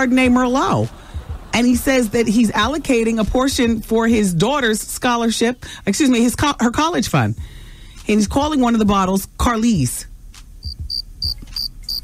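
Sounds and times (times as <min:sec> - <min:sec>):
faint low thumps: 0:00.2 - 0:04.3, 0:10.6 - 0:11.5
crickets chirping: 0:10.6 - 0:12.0.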